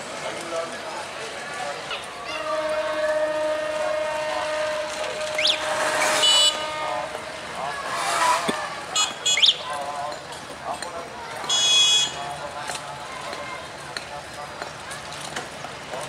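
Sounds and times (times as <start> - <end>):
people's voices: 0.0 - 16.0
train horn long note: 2.2 - 9.4.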